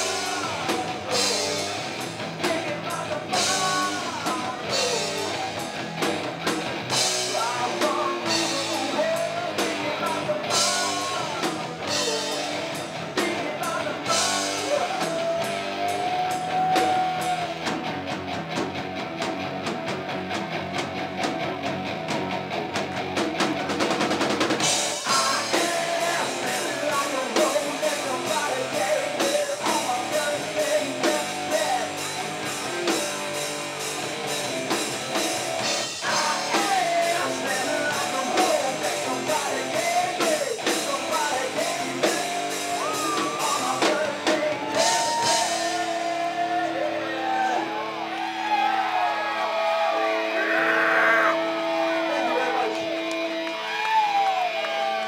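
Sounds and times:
man singing lead vocals: 0:00.0 - 0:17.6, 0:24.7 - 0:33.3, 0:35.6 - 0:47.9
drum kit: 0:00.0 - 0:49.3
electric guitars: 0:00.0 - 0:55.0.

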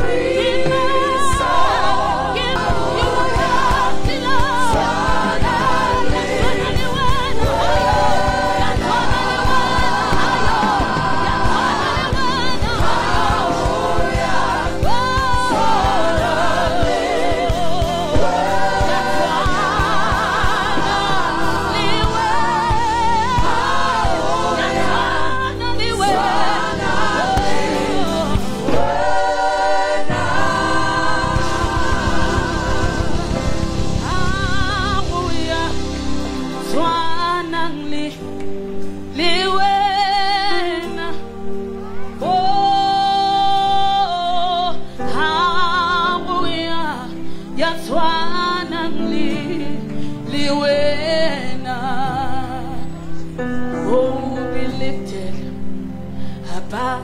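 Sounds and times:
church band with drums: 0:00.0 - 0:39.1
group singing gospel: 0:00.0 - 0:41.5, 0:42.2 - 0:55.7.

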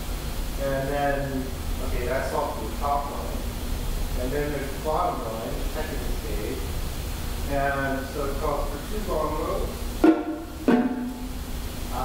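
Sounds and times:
stick strokes on drums: 0:10.0 - 0:11.4.

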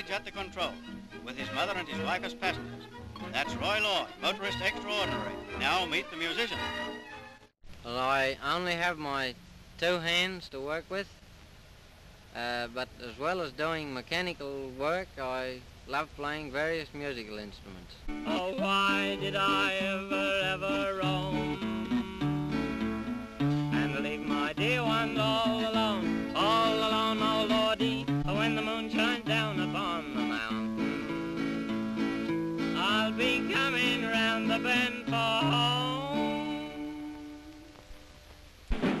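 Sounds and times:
lap slide guitar: 0:18.2 - 0:37.8
loud percussive hit: 0:38.7 - 0:39.0.

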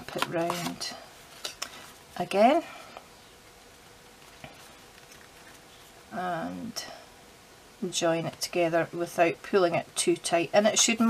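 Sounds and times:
handling small cardstock box: 0:00.0 - 0:00.8.

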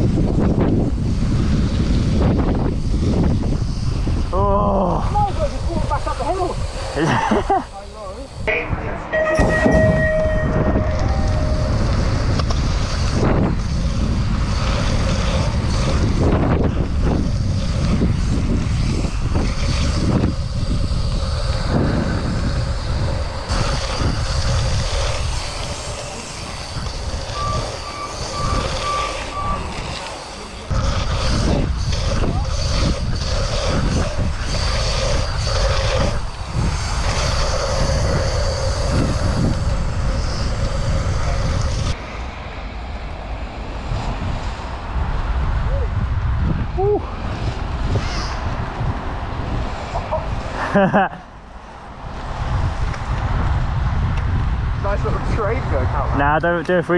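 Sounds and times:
bike tyre noise: 0:00.0 - 0:56.9
wind rushing over microphone: 0:00.0 - 0:56.9
short beeps: 0:08.5 - 0:12.2, 0:26.8 - 0:29.9.

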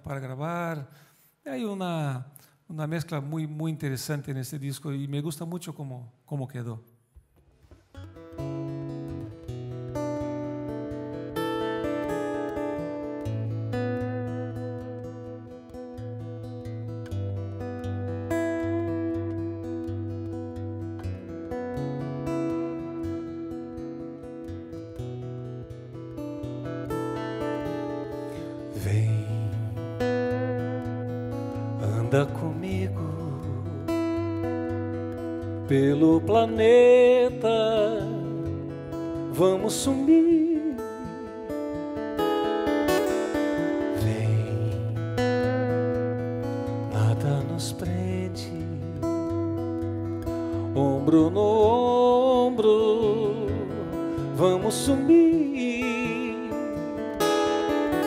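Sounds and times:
acoustic guitar picking: 0:07.4 - 0:58.0.

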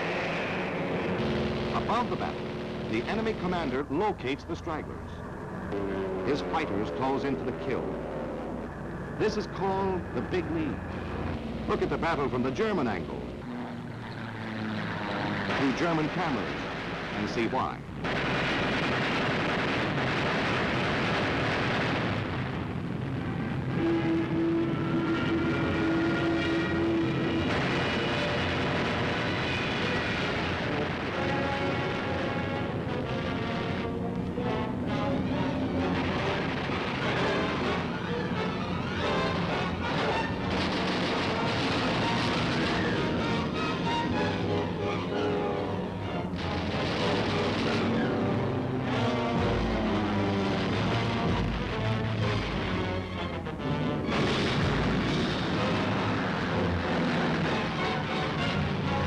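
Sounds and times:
aircraft engines droning: 0:00.0 - 0:59.0
film music with held notes: 0:01.2 - 0:17.8, 0:23.7 - 0:59.0.

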